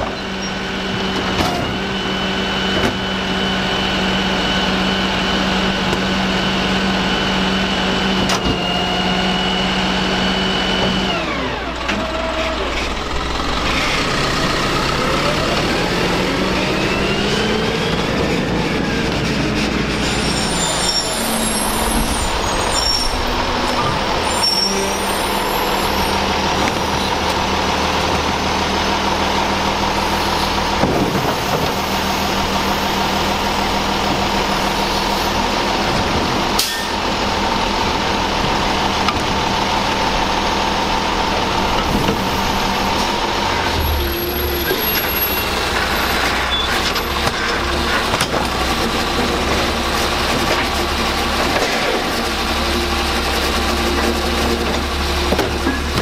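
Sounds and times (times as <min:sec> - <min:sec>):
garbage truck diesel engine: 0:00.0 - 0:56.0.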